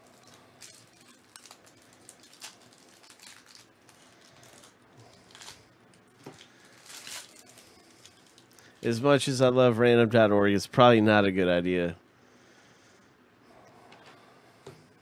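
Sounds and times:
wrapper crinkling and tearing: 0.0s - 8.9s.

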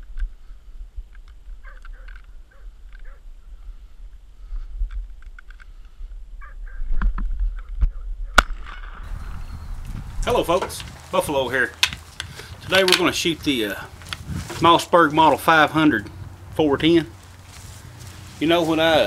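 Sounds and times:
wind rumble on microphone: 0.0s - 11.3s, 11.9s - 15.0s, 15.8s - 18.4s
sharp crack: 8.4s - 9.1s
birds calling: 9.0s - 19.0s.

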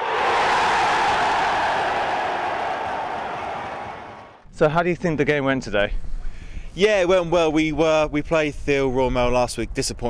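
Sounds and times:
crowd cheering: 0.0s - 4.4s.

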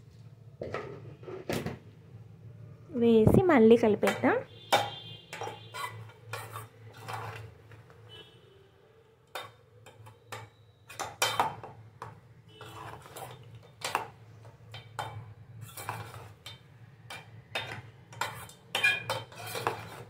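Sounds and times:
metal spoon scraping a pot: 4.1s - 8.3s, 9.3s - 20.0s.

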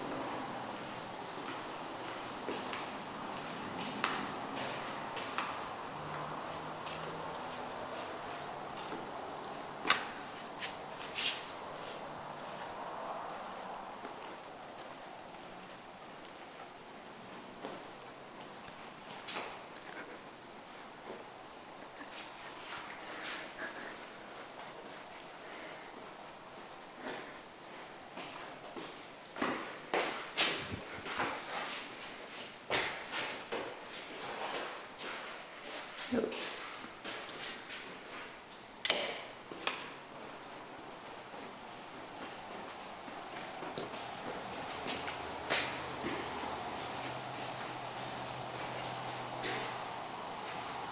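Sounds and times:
room tone hiss: 0.0s - 50.9s
footsteps on hard floor: 1.4s - 6.2s.

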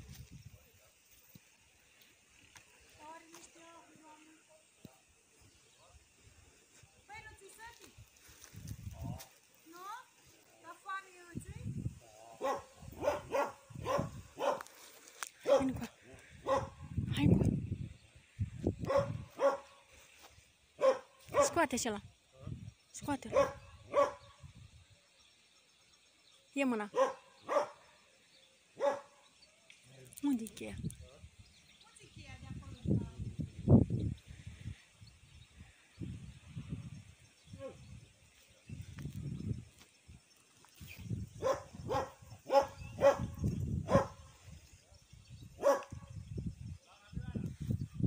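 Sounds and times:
dog barking: 12.4s - 14.7s, 15.4s - 15.8s, 16.4s - 16.8s, 18.8s - 19.8s, 20.8s - 21.6s, 23.3s - 24.3s, 26.9s - 27.9s, 28.8s - 29.2s, 41.4s - 43.3s, 43.9s - 44.2s, 45.6s - 46.0s.

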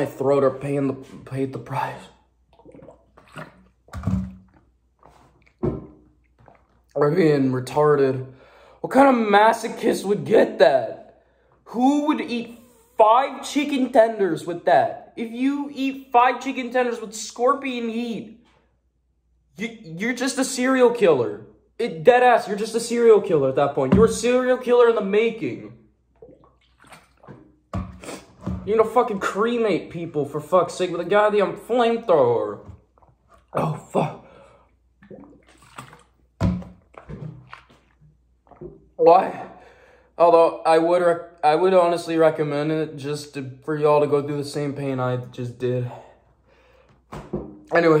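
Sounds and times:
gulps of water swallowed: 2.4s - 7.0s, 26.1s - 28.5s, 32.7s - 39.6s
bottle set down on table: 47.1s - 47.7s.

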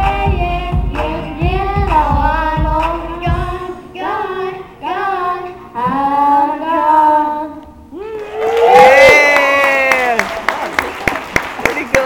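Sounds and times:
audience cheering and screaming: 8.0s - 10.4s
people clapping: 8.2s - 12.0s.

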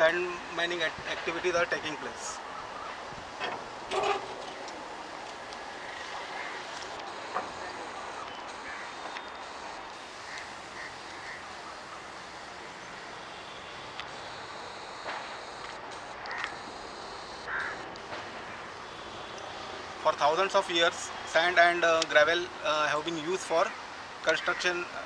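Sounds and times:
outdoor background hiss: 0.0s - 25.0s
birds cawing: 5.8s - 6.7s, 7.6s - 9.3s, 10.2s - 12.1s, 16.2s - 16.6s, 17.4s - 17.8s.

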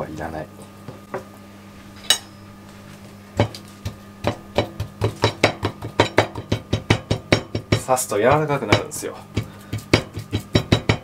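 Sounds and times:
fork tapping meat on cutting board: 3.4s - 7.8s, 8.7s - 11.0s.

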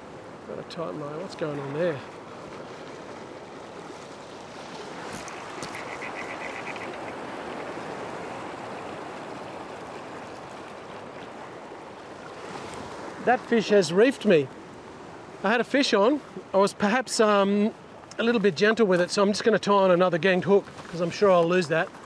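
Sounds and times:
surf washing over rocks: 0.0s - 22.0s.

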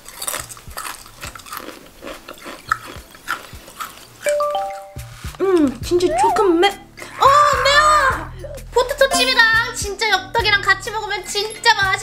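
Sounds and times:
potato chip crunching: 0.0s - 4.2s.

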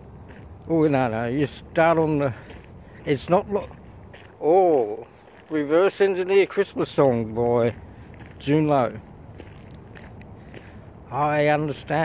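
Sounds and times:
faint footsteps on bush track: 0.0s - 12.0s
outdoor background noise: 0.0s - 12.0s.

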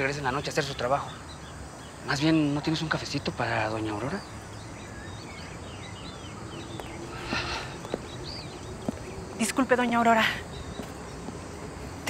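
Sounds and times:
outdoor background noise: 0.0s - 12.0s
small birds chirping: 0.0s - 12.0s.

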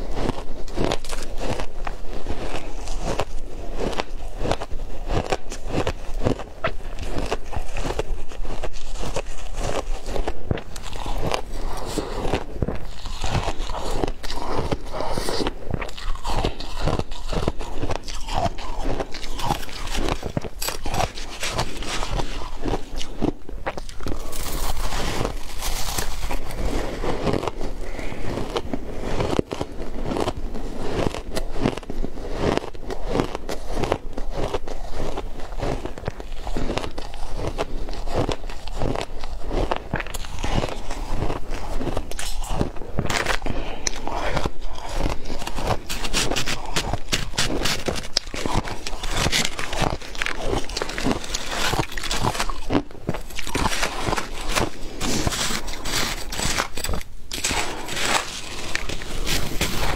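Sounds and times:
chewing crushed ice: 0.0s - 59.9s.

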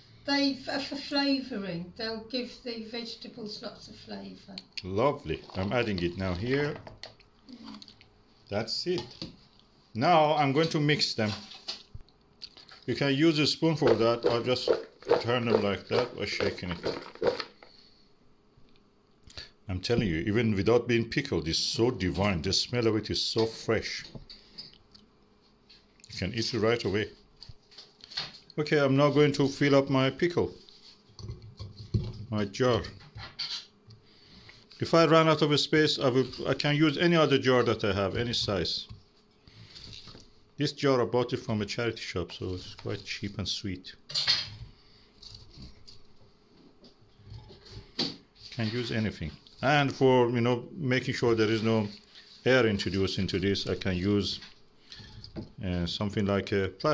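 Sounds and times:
vegetables shaken in plastic bowl: 13.7s - 17.6s.

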